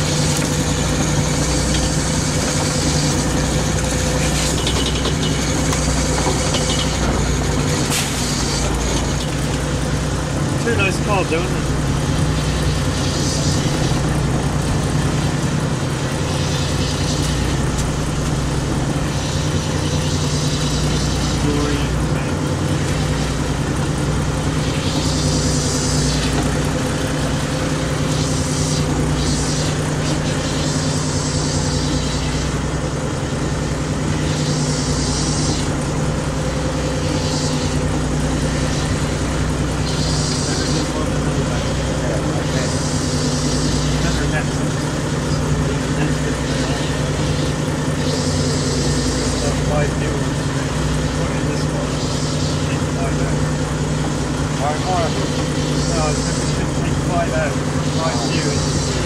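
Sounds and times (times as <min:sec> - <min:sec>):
boat engine drone: 0:00.0 - 0:59.0.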